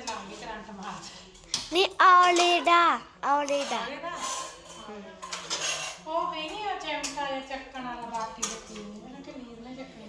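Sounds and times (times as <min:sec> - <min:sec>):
steel utensils clattering: 0:02.2 - 0:07.4.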